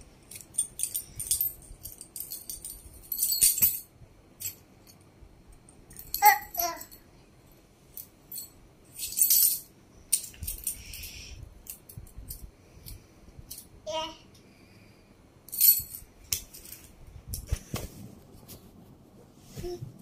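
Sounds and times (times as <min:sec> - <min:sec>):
small metal object jingling: 0:00.3 - 0:05.0, 0:05.9 - 0:07.0, 0:08.0 - 0:12.5, 0:15.5 - 0:16.8.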